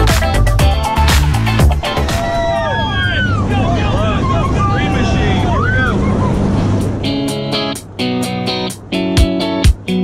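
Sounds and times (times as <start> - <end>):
people whooping and shouting: 1.8 - 6.4
strummed guitar music: 6.7 - 10.0.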